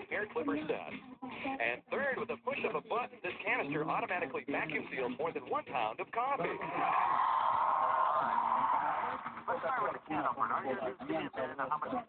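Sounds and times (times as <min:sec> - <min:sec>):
audience cheering and applauding: 0:06.6 - 0:09.5.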